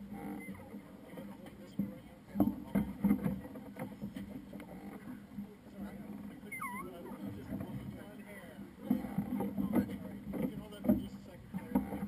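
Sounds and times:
low indistinct voices: 0.0s - 12.0s.

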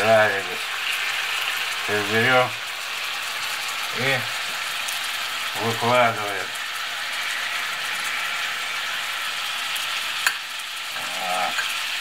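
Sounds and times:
sausages sizzling in a frying pan: 0.0s - 12.0s.

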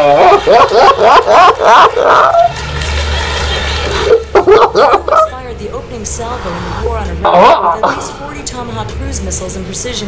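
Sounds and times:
person's voice: 4.4s - 10.0s.

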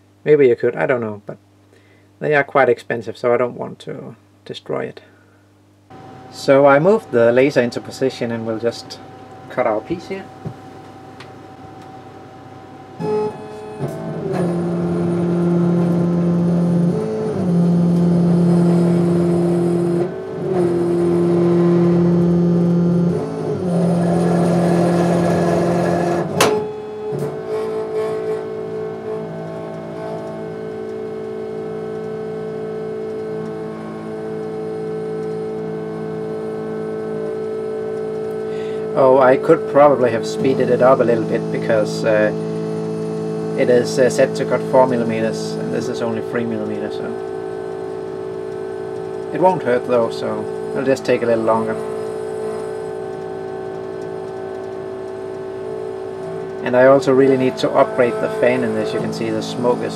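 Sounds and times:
laser cutter whining: 5.9s - 59.9s.

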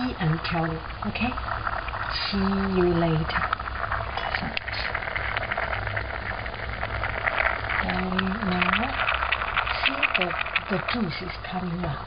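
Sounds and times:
bubbles popping in simmering pot: 0.0s - 12.0s
low steady hum: 0.0s - 12.0s.

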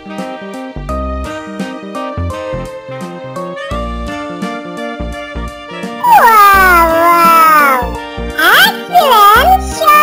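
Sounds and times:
background music: 0.0s - 10.0s
high-pitched falling cry: 6.0s - 7.9s.

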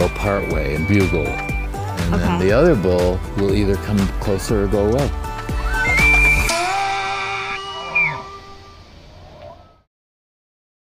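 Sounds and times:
elk bugling whistle: 0.0s - 2.1s, 5.4s - 9.9s
background music: 0.0s - 7.5s.

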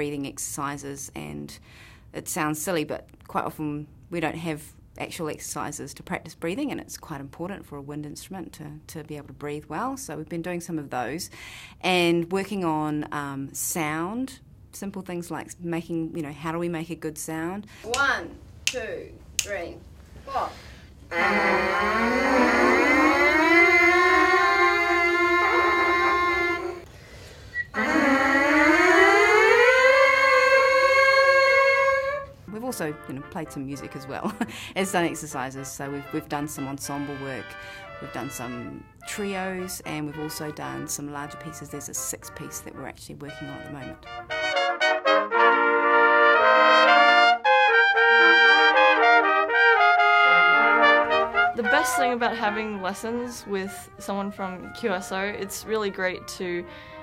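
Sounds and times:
brass mouthpieces buzzing: 21.0s - 26.9s, 27.5s - 32.4s, 43.4s - 56.8s
trumpet ensemble playing chords: 21.1s - 26.8s, 27.7s - 57.0s.

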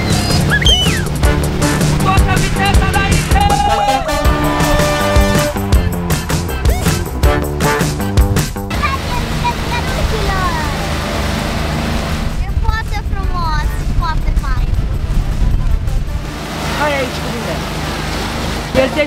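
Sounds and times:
voices calling out: 0.0s - 7.2s
wind buffeting: 0.0s - 18.7s
motorboat engine drone: 0.0s - 19.0s
rushing water: 0.0s - 19.0s.

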